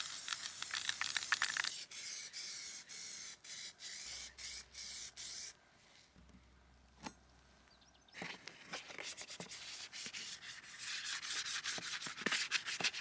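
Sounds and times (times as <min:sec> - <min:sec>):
spray paint can hissing: 0:00.0 - 0:05.5.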